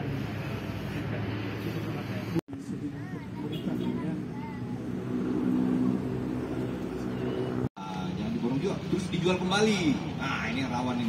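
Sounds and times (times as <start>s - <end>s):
engine running: 0.0s - 10.8s.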